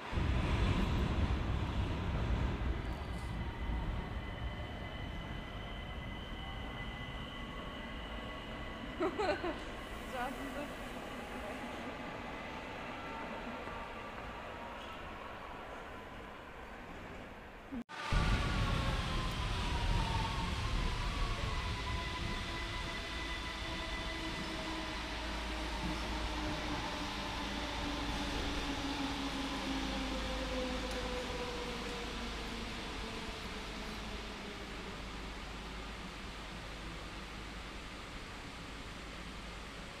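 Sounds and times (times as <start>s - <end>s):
low train running rumble: 0.0s - 40.0s.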